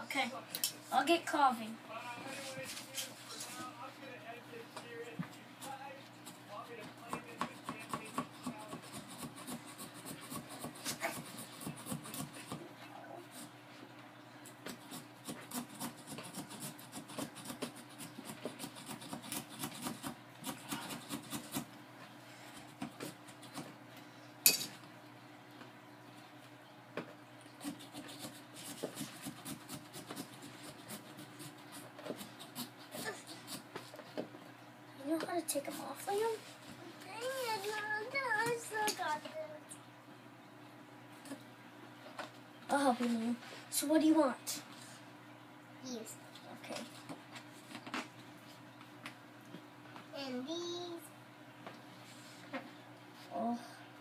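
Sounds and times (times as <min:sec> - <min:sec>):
small saw rasping through pumpkin: 0:07.5 - 0:12.6, 0:14.7 - 0:21.7, 0:27.6 - 0:33.7.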